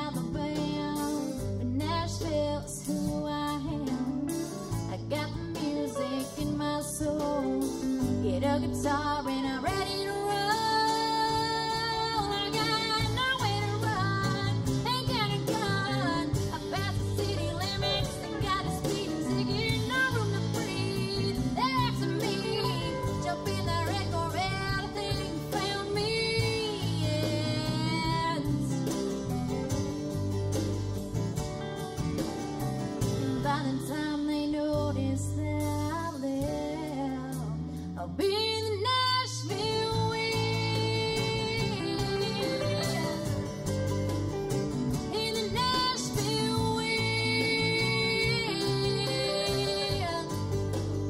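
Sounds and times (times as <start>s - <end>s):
woman singing: 0.0s - 29.5s, 33.0s - 43.8s, 44.9s - 51.0s
acoustic guitar: 0.0s - 51.0s
electric bass: 0.0s - 51.0s
electric guitar: 0.0s - 51.0s
live country band: 0.0s - 51.0s.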